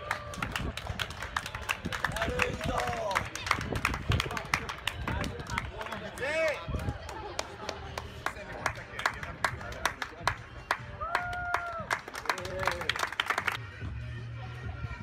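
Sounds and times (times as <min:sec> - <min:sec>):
crowd cheering: 0:00.0 - 0:03.6
rhythmic clapping: 0:00.1 - 0:13.6.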